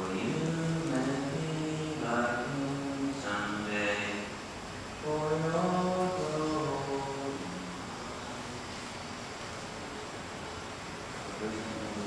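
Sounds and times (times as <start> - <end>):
low voice chanting: 0.0 - 4.4, 5.0 - 8.8.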